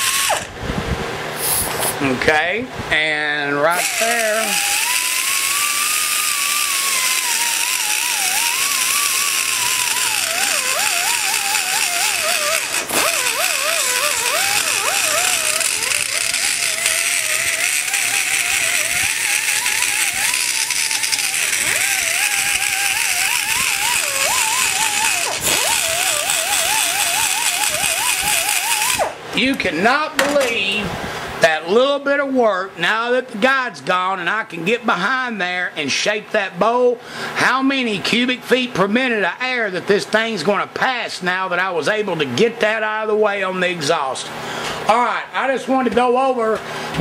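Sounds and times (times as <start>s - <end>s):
die grinder whining on metal: 0.0s - 0.6s, 3.6s - 29.7s.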